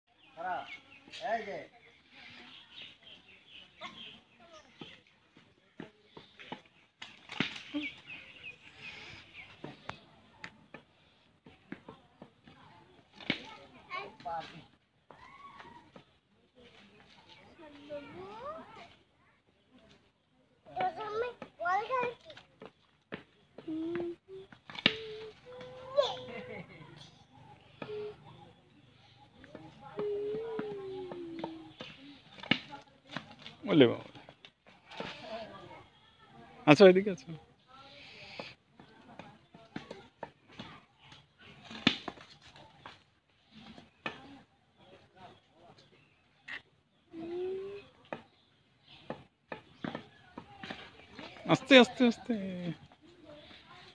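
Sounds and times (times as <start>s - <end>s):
birds chirping: 0.1s - 53.9s.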